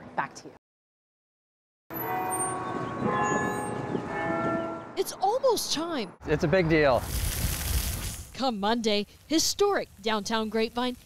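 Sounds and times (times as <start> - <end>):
tower bells chiming: 1.9 - 5.2.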